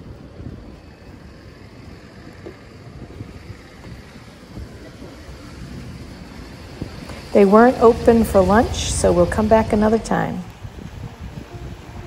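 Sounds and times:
faint street ambience: 0.0 - 12.0
wind buffeting microphone: 0.0 - 12.0.

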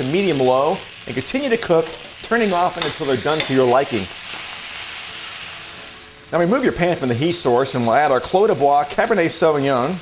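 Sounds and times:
steaks sizzling in a skillet: 0.0 - 10.0.

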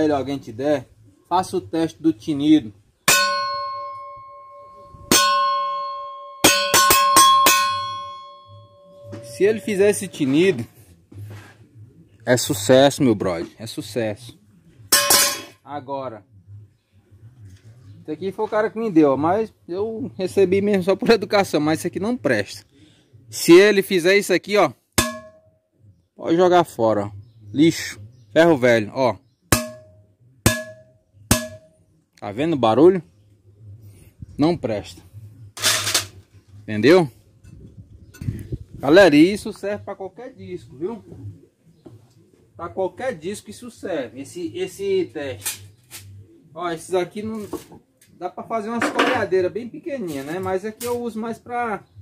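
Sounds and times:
metal tool striking saw blade: 3.1 - 9.7, 15.0 - 15.5, 25.0 - 25.4, 29.5 - 31.7.

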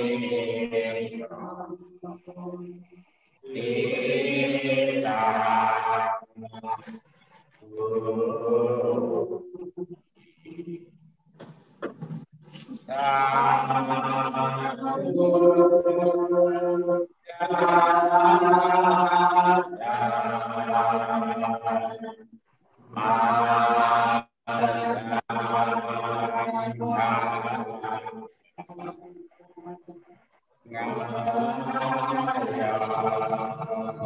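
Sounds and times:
men chanting a prayer: 0.0 - 2.7, 3.4 - 7.0, 12.6 - 22.3, 22.9 - 29.1, 30.7 - 34.0
voices chanting a held note: 30.7 - 34.0.

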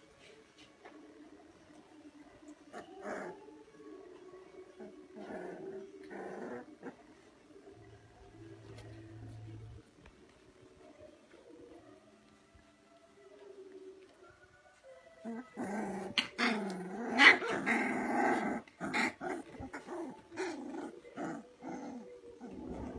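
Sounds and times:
puppies growling and yipping: 2.7 - 3.4, 4.8 - 7.4, 15.2 - 22.9.

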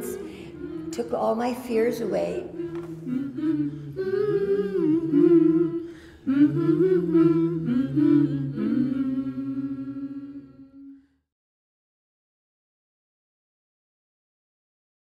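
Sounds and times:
voices humming a slow melody: 0.0 - 11.1.

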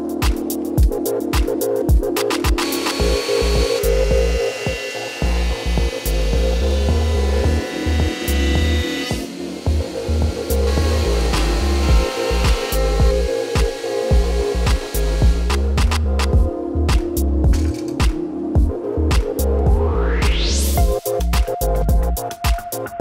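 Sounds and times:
music with heavy beat: 0.0 - 23.0
jointer-planer planing wood: 2.6 - 16.1.

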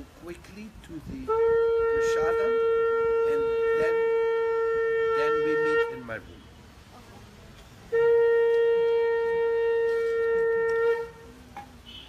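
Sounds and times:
conch shell blown: 1.3 - 6.2, 7.9 - 12.0.

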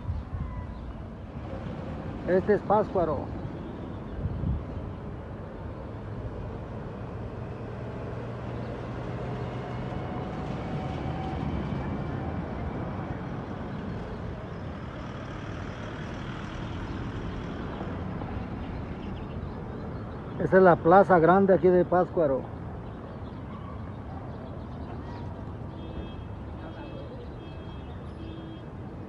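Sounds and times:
street noise: 0.0 - 29.0.

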